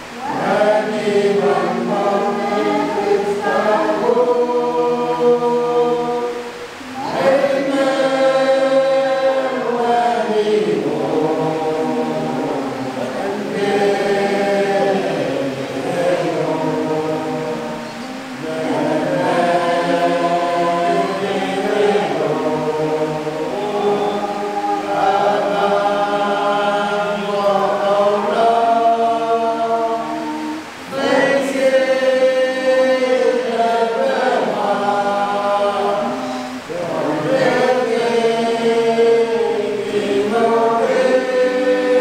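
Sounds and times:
men's choir singing: 0.0s - 42.0s.

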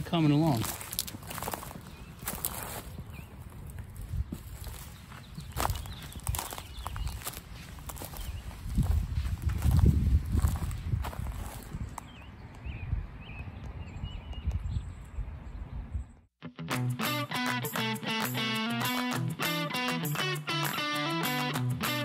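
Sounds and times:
footsteps on wood-chip mulch: 0.0s - 12.2s.

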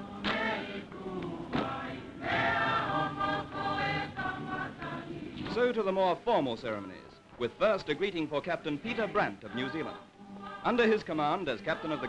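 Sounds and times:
choir singing held chords: 0.0s - 6.0s, 7.5s - 12.0s.

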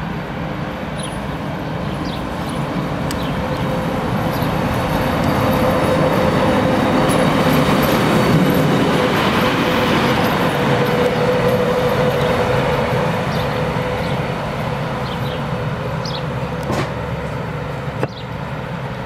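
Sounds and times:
locomotive wheels rumbling on rails: 0.0s - 19.0s.

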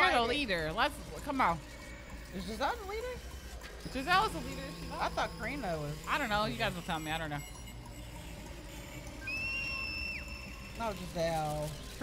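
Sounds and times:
thin high whistle tone: 3.9s - 12.0s.

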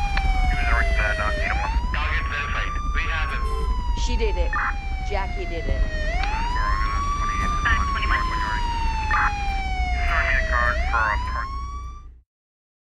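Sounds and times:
deep steady low rumble: 0.0s - 12.1s
siren wailing: 0.0s - 12.2s.

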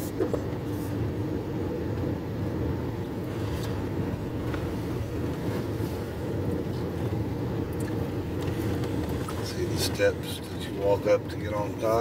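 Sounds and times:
car driving heard from inside: 0.0s - 12.0s.

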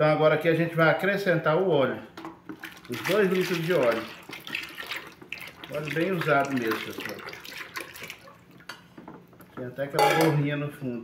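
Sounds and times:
oil pouring into plastic bucket: 2.5s - 8.6s.

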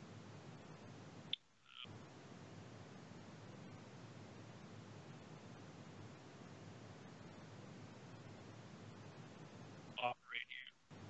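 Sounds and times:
faint line hiss: 0.0s - 11.0s.

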